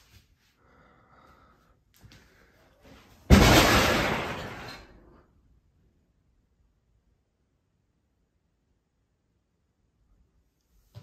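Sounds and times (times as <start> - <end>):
loud crash overhead: 3.3 - 4.9.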